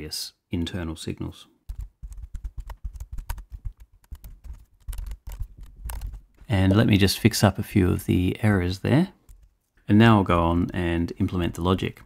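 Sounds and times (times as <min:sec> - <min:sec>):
computer keyboard typing: 0:01.7 - 0:06.4.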